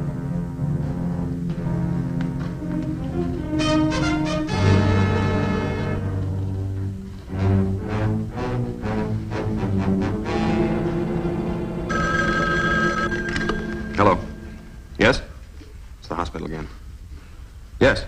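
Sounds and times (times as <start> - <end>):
orchestral music: 0.0 - 15.4
telephone bell ringing: 11.9 - 15.0.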